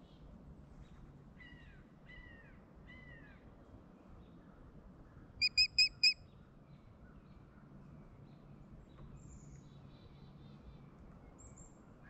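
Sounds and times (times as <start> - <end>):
birds calling: 5.4 - 6.2.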